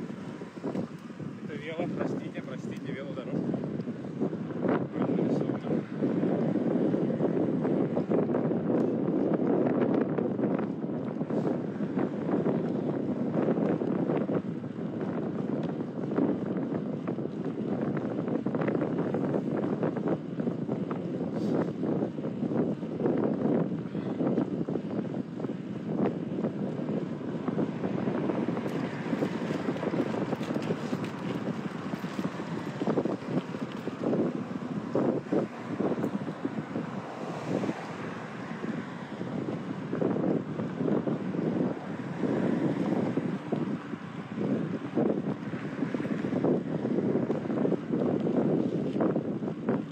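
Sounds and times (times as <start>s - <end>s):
wind buffeting microphone: 0.0s - 49.9s.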